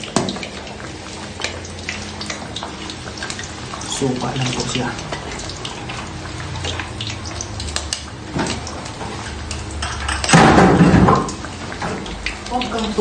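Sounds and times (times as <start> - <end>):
tap water running into sink: 0.0 - 13.0.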